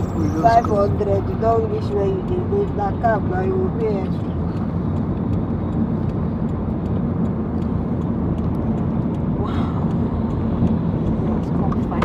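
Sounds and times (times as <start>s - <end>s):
people talking: 0.1s - 4.2s, 11.3s - 12.0s.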